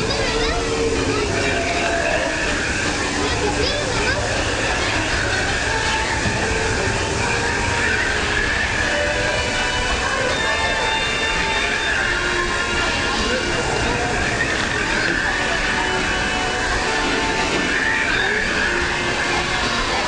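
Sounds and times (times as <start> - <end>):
train car rumbling on track: 0.0 - 20.0.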